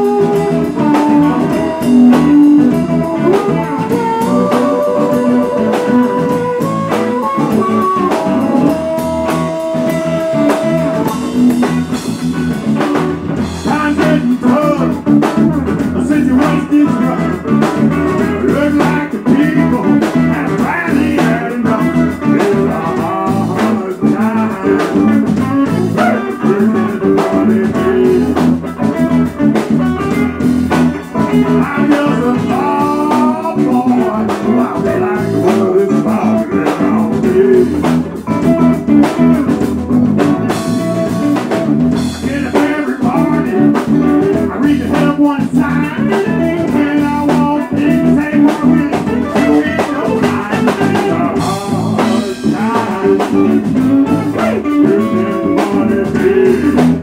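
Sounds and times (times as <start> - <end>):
drums: 0.0 - 57.0
electric guitar: 0.0 - 57.0
harmonica bending notes: 0.0 - 57.0.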